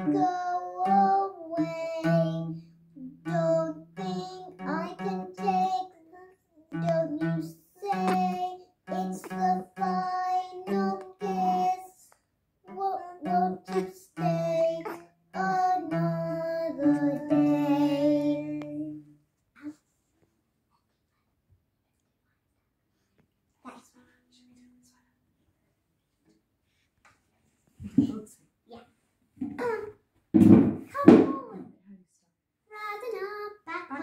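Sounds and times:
acoustic guitar: 0:00.0 - 0:06.0, 0:06.7 - 0:12.0, 0:12.7 - 0:19.8
child singing: 0:00.0 - 0:19.1.

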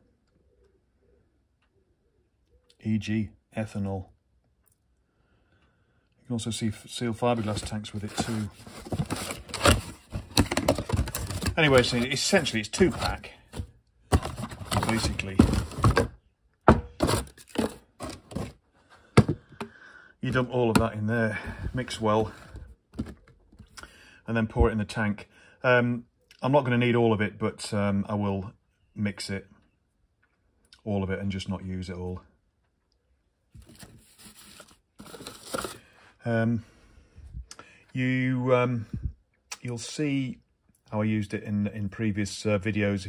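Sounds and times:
packaging scraping and crinkling: 0:07.1 - 0:18.6, 0:33.6 - 0:35.9
cardboard box handled: 0:07.3 - 0:16.1, 0:16.7 - 0:18.6, 0:33.6 - 0:35.8.

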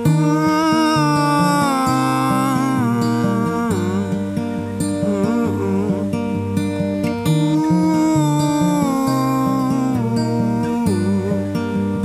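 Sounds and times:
acoustic guitar: 0:00.0 - 0:12.0
wordless vocal melody: 0:00.0 - 0:12.0.

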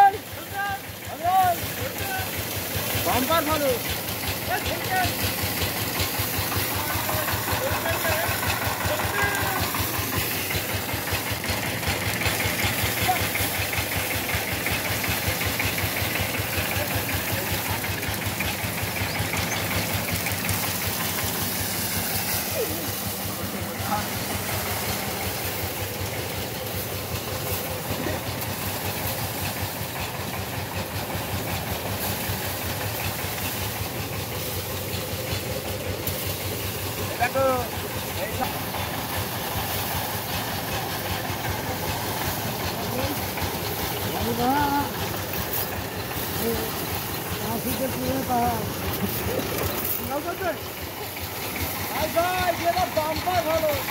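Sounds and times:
engine-driven threshing drum running: 0:00.0 - 0:53.9.

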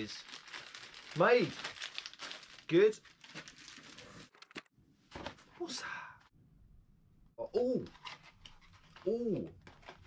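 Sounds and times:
plastic packaging crinkling: 0:00.0 - 0:04.7.

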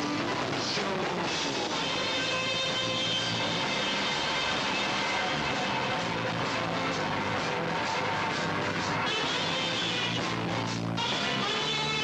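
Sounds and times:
distorted rock band drone: 0:00.0 - 0:12.0.

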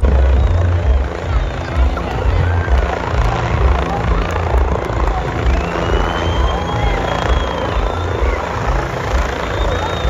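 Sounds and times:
faint voices: 0:00.0 - 0:10.0
helicopter rotor beating: 0:00.0 - 0:10.0.

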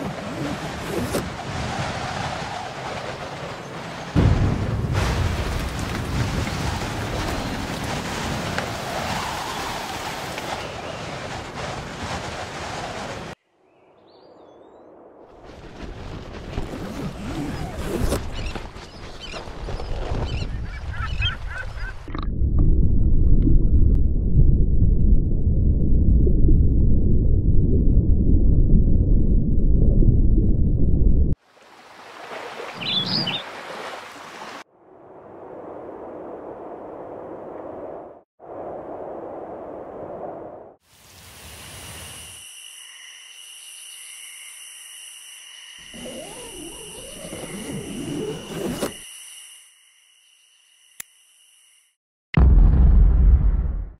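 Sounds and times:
low wind rumble: 0:19.1 - 0:31.4
muffled underwater rumble: 0:22.1 - 0:31.4
night insects chirring: 0:41.0 - 0:51.9.

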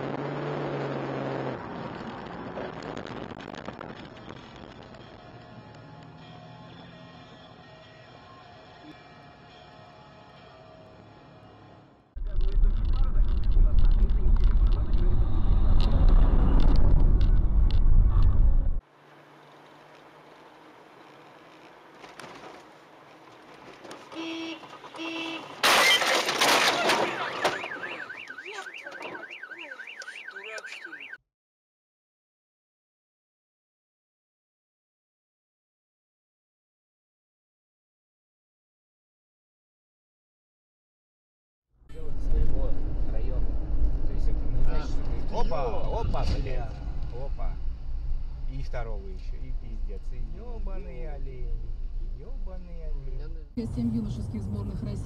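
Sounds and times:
low rumble driving on wet road: 0:12.2 - 0:27.4, 0:41.9 - 0:55.0
car cabin and road noise: 0:12.2 - 0:31.2, 0:41.9 - 0:55.0
warbling car alarm: 0:27.0 - 0:31.2.

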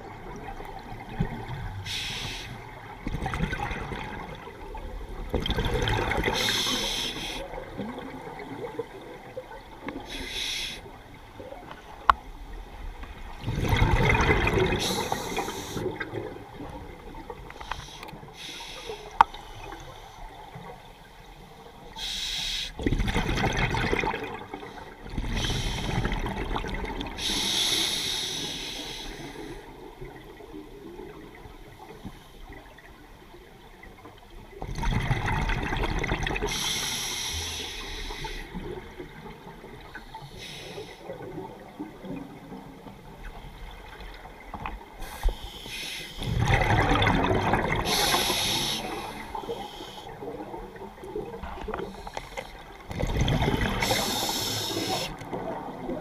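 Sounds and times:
regulator exhale bubbling: 0:13.4 - 0:16.4, 0:45.0 - 0:50.6, 0:51.3 - 0:55.8.

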